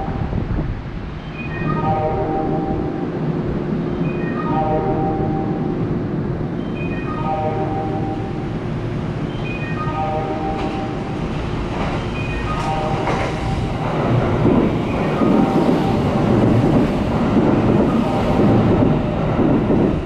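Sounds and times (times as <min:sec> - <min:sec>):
train rumbling past: 0:00.0 - 0:20.0
electronic platform chime: 0:01.2 - 0:03.2, 0:03.9 - 0:05.9, 0:06.6 - 0:08.6, 0:09.2 - 0:11.3, 0:12.1 - 0:13.8.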